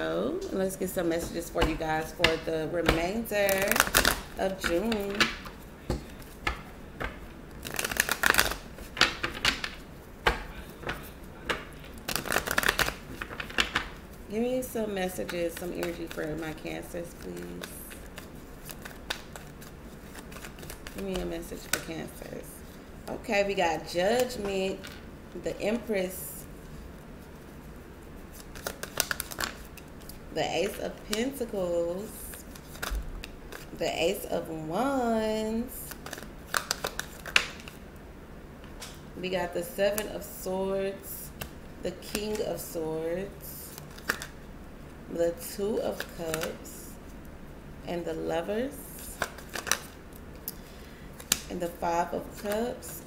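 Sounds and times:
cards being shuffled: 0:01.0 - 0:14.2, 0:14.9 - 0:22.8, 0:26.7 - 0:33.8, 0:35.8 - 0:37.8, 0:42.1 - 0:42.7, 0:43.7 - 0:44.4, 0:45.7 - 0:46.7, 0:49.0 - 0:53.0
cards tapping: 0:01.1 - 0:14.0, 0:15.0 - 0:21.9, 0:28.4 - 0:31.3, 0:35.9 - 0:37.8, 0:43.8 - 0:44.3.

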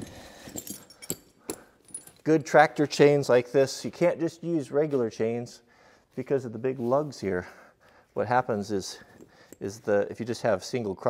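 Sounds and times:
steel tire chain clinking: 0:00.0 - 0:02.3.

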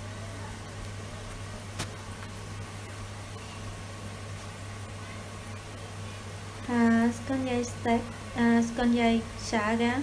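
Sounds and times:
low hum from hob: 0:00.0 - 0:10.0.

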